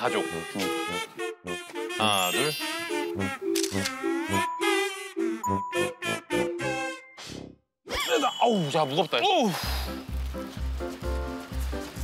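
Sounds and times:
cheerful background music: 0:00.0 - 0:07.5, 0:08.1 - 0:12.0
camera shutter clicking: 0:03.5 - 0:04.0.

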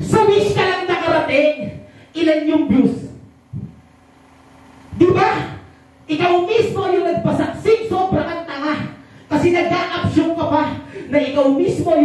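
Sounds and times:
faint sound system hum: 0:00.0 - 0:12.0
man rapping into microphone: 0:06.2 - 0:12.0.

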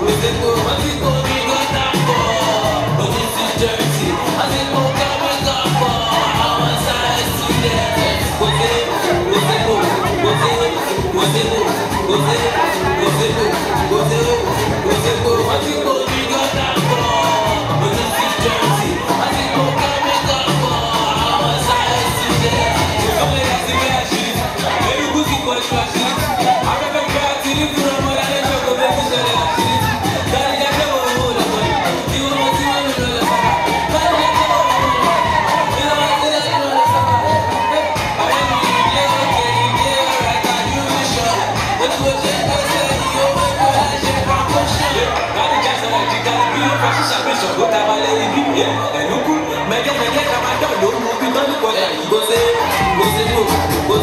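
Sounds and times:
crowd shouting and cheering: 0:00.0 - 0:54.0
loud dance music: 0:00.0 - 0:54.0.

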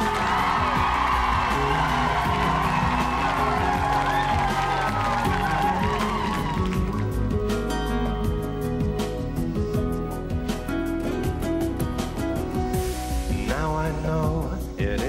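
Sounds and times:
studio audience cheering: 0:00.0 - 0:07.8
slow chill-out pop song: 0:00.0 - 0:15.0.

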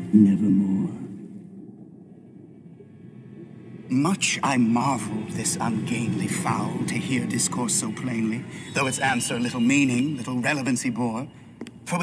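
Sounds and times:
low ambient rumble: 0:00.0 - 0:12.0.

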